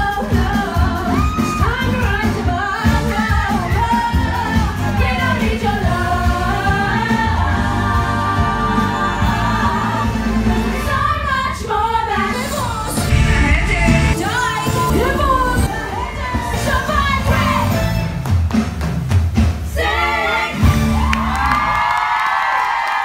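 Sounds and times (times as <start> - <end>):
amplified pop band: 0.0 - 21.4
backing singers: 0.3 - 18.2, 19.7 - 23.0
woman singing into microphone: 10.8 - 17.7.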